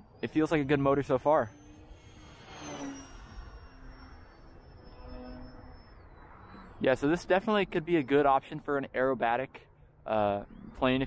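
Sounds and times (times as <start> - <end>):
electric motor high whine: 0.0 - 11.0.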